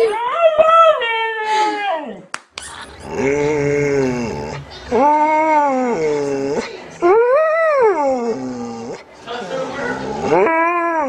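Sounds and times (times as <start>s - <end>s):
dog howling: 3.0s - 9.1s, 9.8s - 11.0s.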